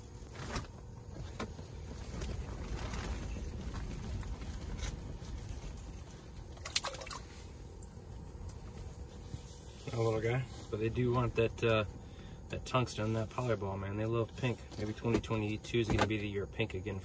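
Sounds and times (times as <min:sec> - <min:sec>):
strong wind buffeting fabric: 0:00.2 - 0:06.6.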